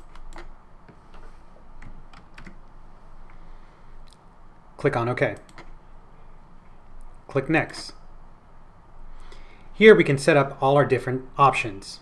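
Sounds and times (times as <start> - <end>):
keyboard typing clicks: 0.0 - 0.6, 1.8 - 2.6, 5.3 - 5.7.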